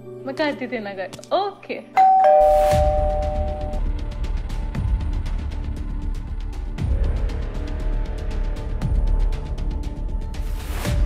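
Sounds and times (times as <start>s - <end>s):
two-note doorbell chime: 2.0s - 3.8s
low music beat: 2.4s - 3.8s.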